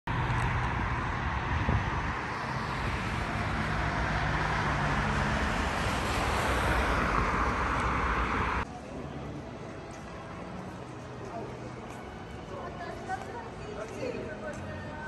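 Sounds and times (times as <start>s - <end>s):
road traffic rushing: 0.1s - 13.6s.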